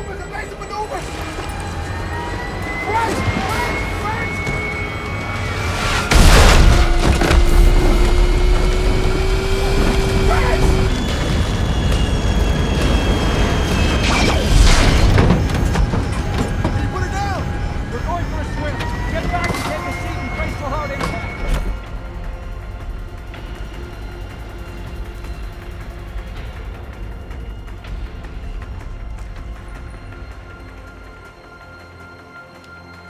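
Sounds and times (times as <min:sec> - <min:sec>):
sustained score tones: 0:00.0 - 0:26.2
heavy boom and crash: 0:05.8 - 0:11.6.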